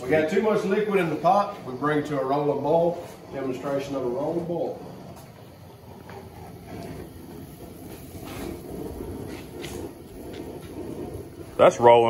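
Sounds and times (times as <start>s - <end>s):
stew bubbling at a boil: 0.0s - 12.0s.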